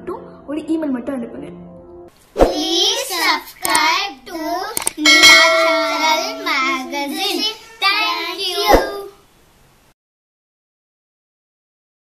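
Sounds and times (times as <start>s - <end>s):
children chanting sing-song: 2.5s - 9.2s.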